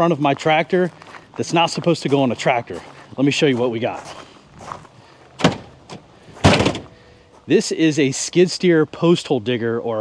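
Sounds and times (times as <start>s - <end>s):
tailgate clunking open: 5.4s - 7.0s.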